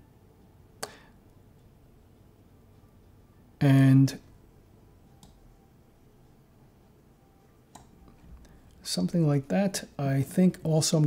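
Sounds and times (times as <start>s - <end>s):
computer mouse click: 7.7s - 7.9s
person speaking: 8.8s - 11.0s.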